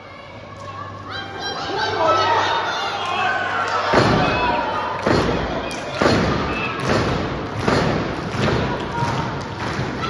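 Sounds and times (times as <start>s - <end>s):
foot stamping on ring boards: 6.0s - 9.9s.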